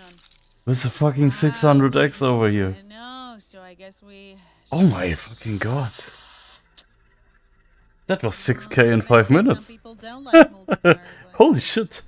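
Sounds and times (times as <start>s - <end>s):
short hiss: 5.2s - 6.8s.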